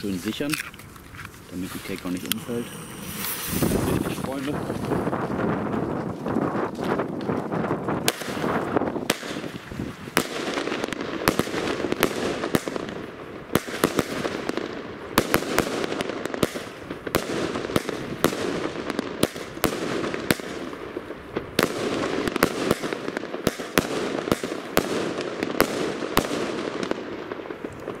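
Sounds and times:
steady background hiss: 0.0 - 5.2
firework bangs: 1.6 - 28.0.

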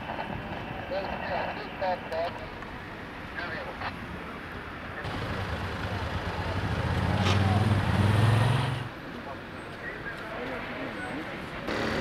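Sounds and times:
vehicle engine accelerating: 5.1 - 8.9.

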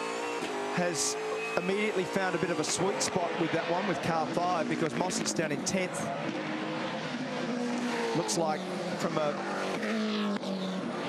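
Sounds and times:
race car engines: 0.0 - 11.0.

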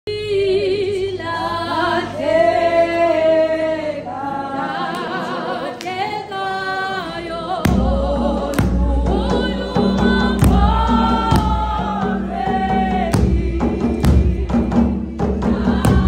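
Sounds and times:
group singing a hymn: 0.1 - 16.0
loud low thumping beat: 7.7 - 16.0.

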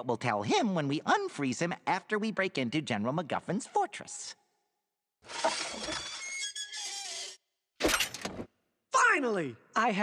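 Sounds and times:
cartoon glassy shatter: 7.8 - 8.3.

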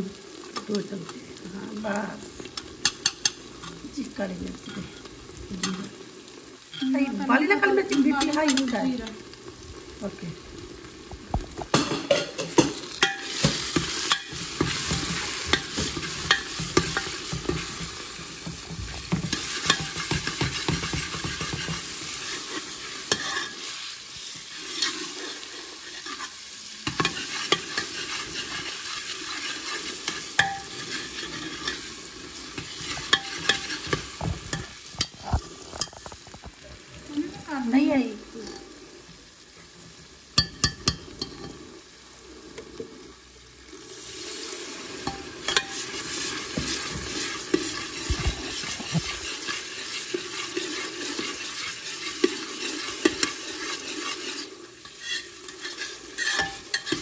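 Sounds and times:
vegetables sizzling in oil: 0.0 - 57.0
metal spoon scraping a pan: 2.5 - 3.8, 6.7 - 9.1, 11.7 - 36.5, 38.4 - 38.7, 40.4 - 41.6, 45.0 - 57.0.

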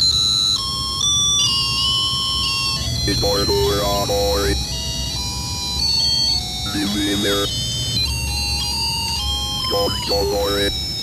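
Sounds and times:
electronic music with high tones: 6.2 - 11.0.

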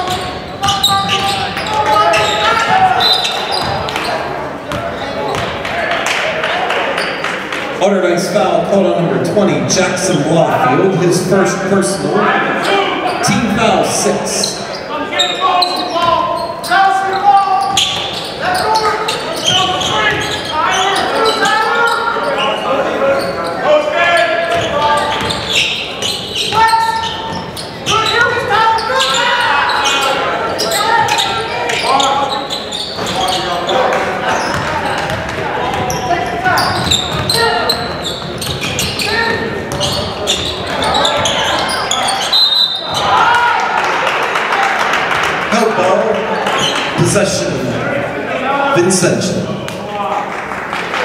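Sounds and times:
voices in echoing gymnasium: 0.0 - 51.0.

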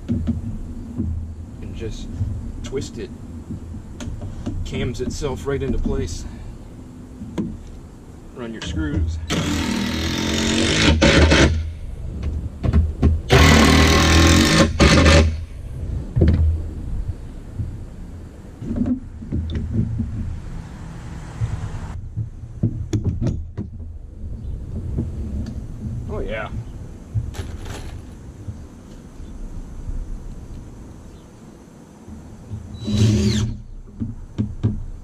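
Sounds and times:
steady low hum: 0.0 - 35.0
impact driver driving screws: 9.3 - 11.6, 13.3 - 15.4, 32.8 - 33.6.

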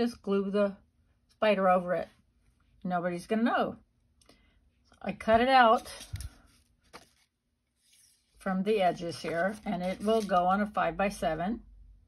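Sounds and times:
paper thump and rustle: 5.9 - 7.3.

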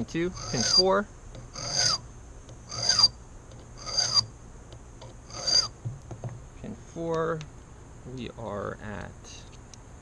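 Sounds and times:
file rasping on brass key: 0.3 - 2.0, 2.7 - 3.2, 3.8 - 4.3, 5.3 - 5.7.

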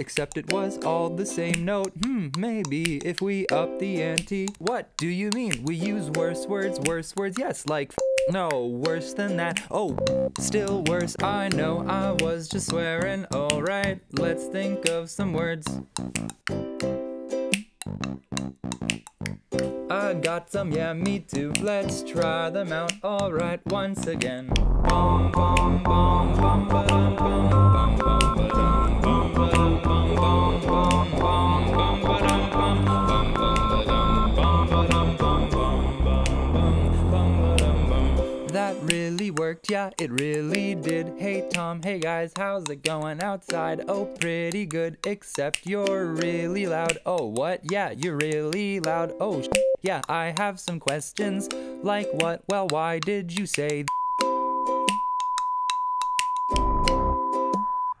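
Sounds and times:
sharp clicks: 0.0 - 16.9, 17.5 - 25.8, 38.5 - 53.9
censor bleep tones: 8.0 - 8.5, 9.9 - 10.4, 27.1 - 29.8, 31.7 - 34.7, 49.5 - 49.8, 53.9 - 58.0
backing track with beat and bass: 8.2 - 44.6, 47.7 - 58.0
held low notes: 23.3 - 38.4.

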